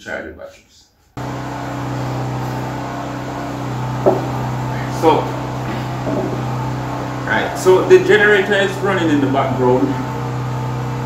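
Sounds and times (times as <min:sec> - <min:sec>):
generator engine humming: 0:01.2 - 0:11.0
brief knock: 0:04.0 - 0:04.4.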